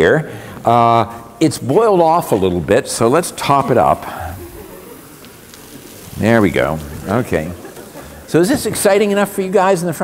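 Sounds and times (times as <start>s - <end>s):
liquid nitrogen pouring hiss: 0.3s - 10.0s.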